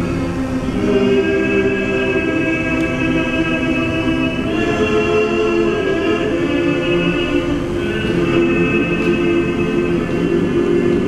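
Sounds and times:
male choir singing: 0.7s - 11.0s.

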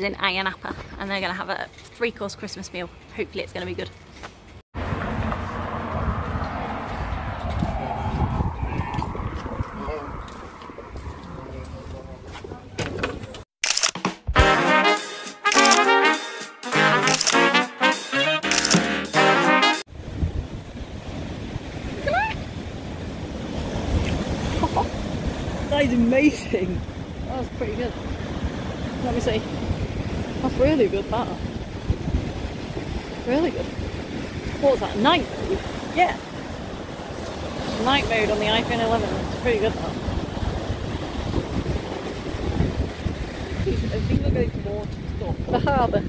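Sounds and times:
street noise: 0.0s - 16.0s, 16.7s - 20.2s
wind buffeting microphone: 4.8s - 13.4s, 19.9s - 46.0s
short rising voice: 7.3s - 10.3s
voices: 8.6s - 13.4s, 30.4s - 31.5s, 33.2s - 33.7s, 34.6s - 36.3s, 37.7s - 40.0s.

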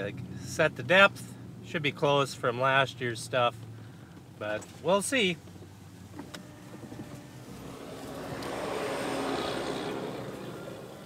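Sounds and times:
truck engine and tyre noise: 0.0s - 11.0s.

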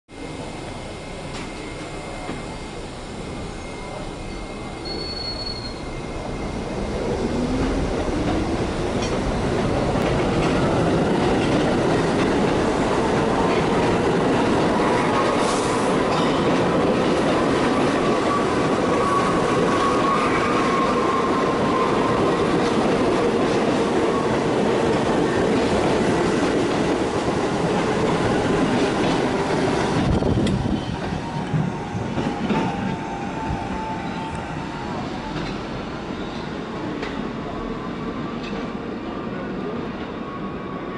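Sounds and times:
subway train motor whine: 0.1s - 40.9s
train wheels on rails: 0.2s - 40.9s.

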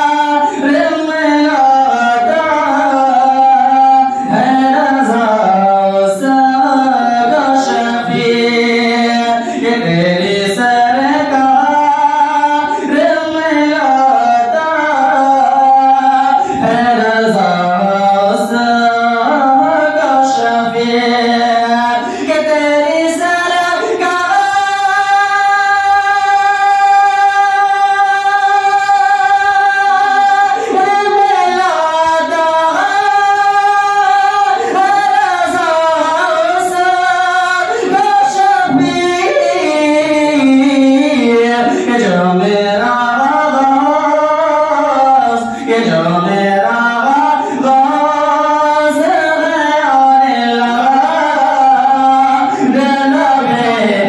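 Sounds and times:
man singing unaccompanied: 0.0s - 54.0s.

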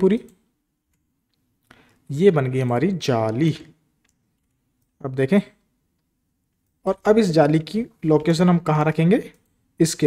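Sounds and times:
man speaking: 0.0s - 0.4s, 2.1s - 3.8s, 5.0s - 5.6s, 6.8s - 10.0s.

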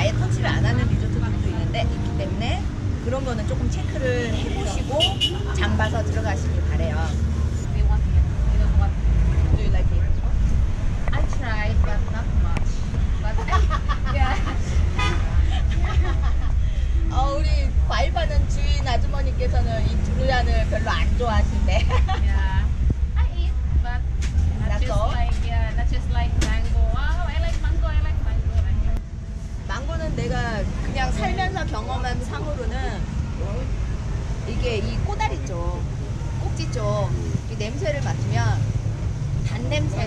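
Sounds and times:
woman talking: 0.0s - 10.3s, 11.1s - 14.6s, 17.0s - 29.0s, 29.7s - 33.1s, 34.4s - 38.7s, 39.4s - 40.0s
low background rumble: 0.0s - 40.0s.

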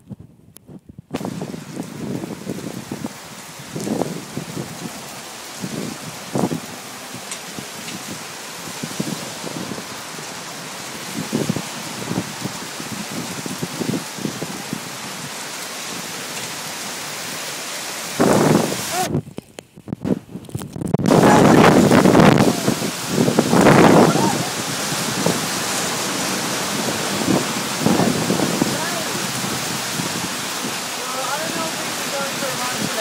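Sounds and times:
wind buffeting microphone: 0.0s - 33.0s
heavy rain on pavement: 1.1s - 33.0s.

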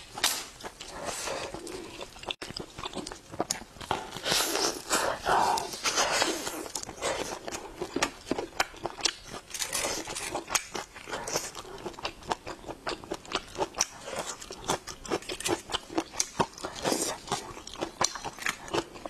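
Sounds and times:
person chewing: 0.0s - 19.0s.

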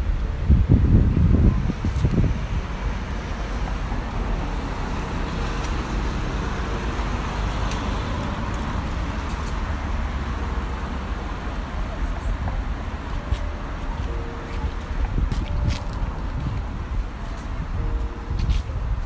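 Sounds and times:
city street traffic: 0.0s - 19.0s.

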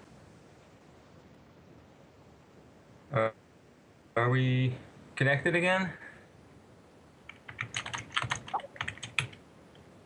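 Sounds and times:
keyboard typing: 7.2s - 9.4s.

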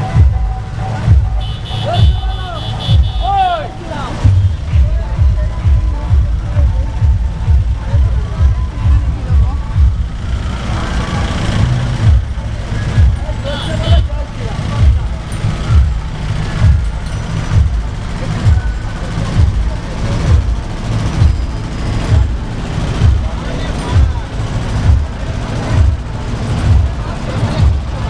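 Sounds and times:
bass-heavy dance music: 0.0s - 28.0s
crowd voices: 0.0s - 28.0s.

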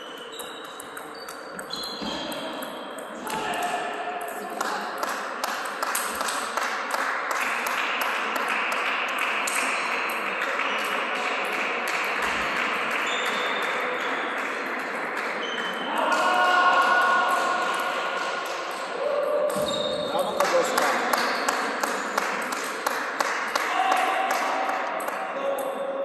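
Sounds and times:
table tennis ball clicking: 0.1s - 3.6s.

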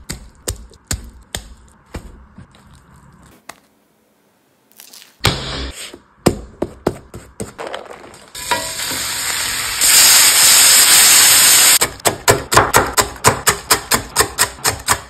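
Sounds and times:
bacon sizzling in frying pan: 8.4s - 11.8s.

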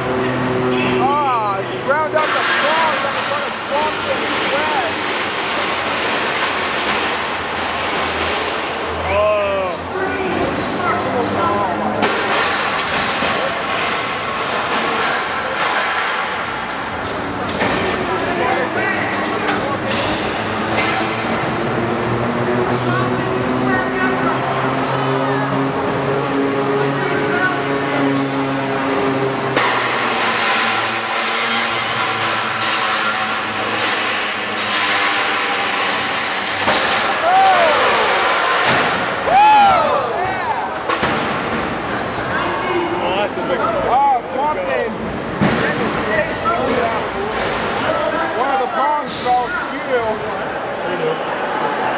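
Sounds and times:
crowd voices and shouts: 0.0s - 51.9s.

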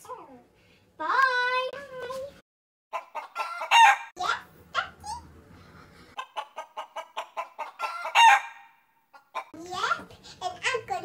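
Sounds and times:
hen clucking: 2.9s - 4.0s, 6.1s - 9.6s.

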